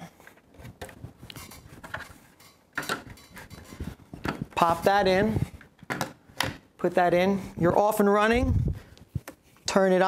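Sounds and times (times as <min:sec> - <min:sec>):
speaker parts clicking and knocking: 0:00.3 - 0:04.8, 0:05.6 - 0:06.8.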